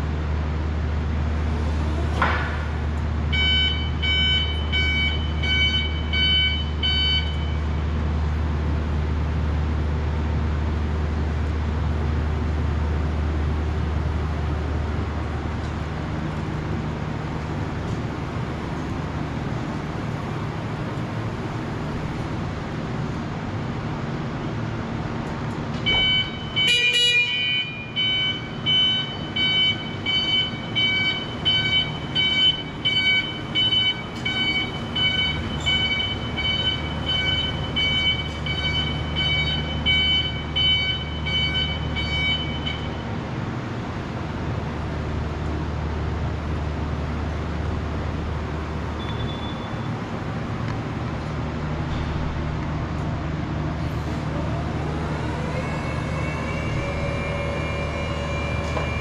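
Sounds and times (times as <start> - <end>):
forklift motor hum: 0.0 - 59.0
warning alarm beeping: 3.3 - 7.7, 25.9 - 43.0.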